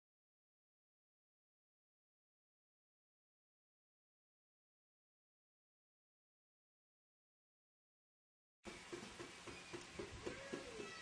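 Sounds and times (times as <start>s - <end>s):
low background noise: 8.7s - 11.0s
faint drawn-out cry: 10.2s - 11.0s.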